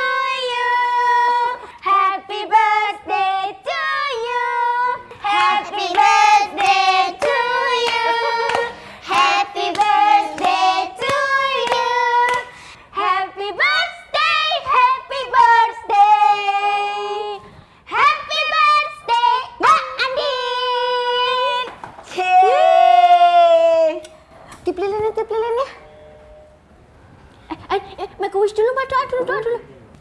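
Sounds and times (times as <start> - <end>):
girls singing together: 0.0 - 21.2
hands clapping along: 5.1 - 12.5.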